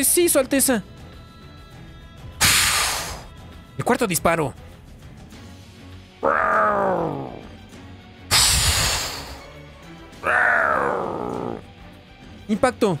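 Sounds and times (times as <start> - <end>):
quiet background music: 0.0 - 13.0
loud hissing blast: 2.4 - 3.3, 8.3 - 9.6
monster screeches falling in pitch: 6.2 - 7.4, 8.3 - 9.4, 10.2 - 11.6.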